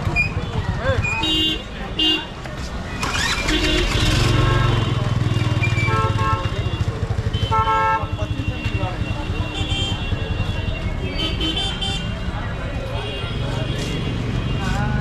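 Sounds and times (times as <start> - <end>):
crowd chatter: 0.0 - 15.0
motorcycle engine rumbling: 0.0 - 15.0
vehicle horns honking: 1.2 - 2.3, 3.0 - 10.5, 11.1 - 12.2.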